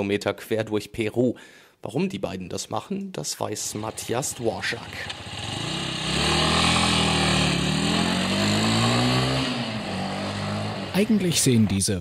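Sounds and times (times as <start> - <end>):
small motorcycle engine running: 3.6 - 11.3.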